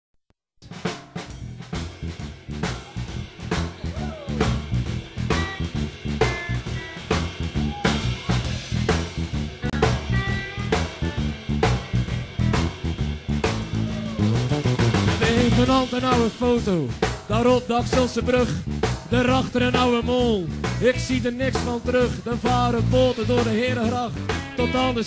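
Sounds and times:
live rock band playing: 0.8 - 25.0.

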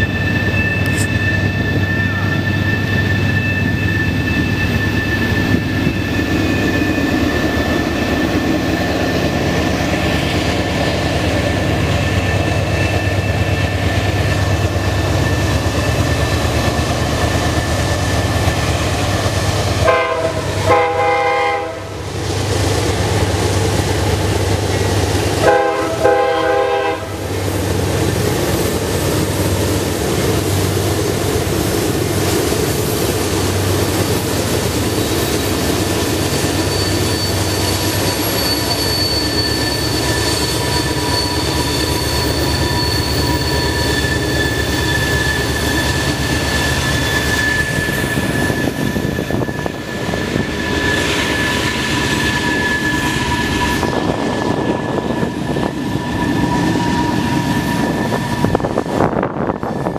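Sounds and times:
diesel locomotives rumbling: 0.0 - 59.9
train horn blasts: 19.8 - 22.0, 25.4 - 27.3.

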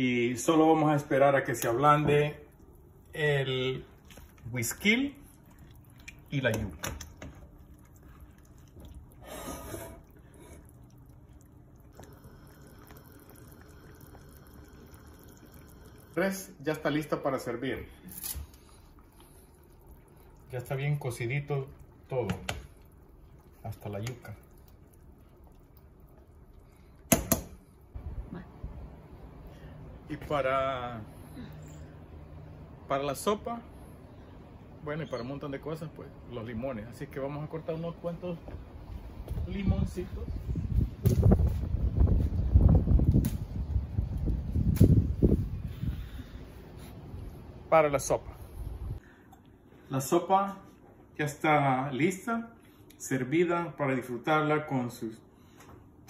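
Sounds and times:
low rumbling on microphone: 38.7 - 47.4.

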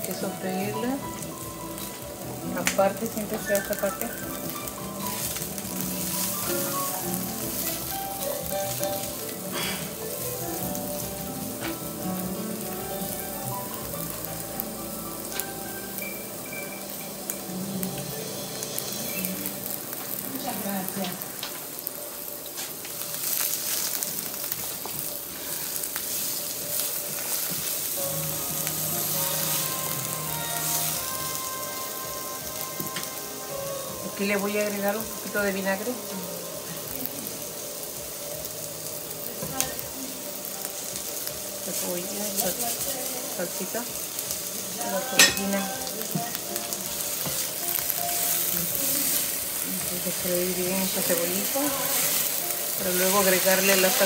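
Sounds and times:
onions sizzling in frying pan: 0.0 - 54.0.

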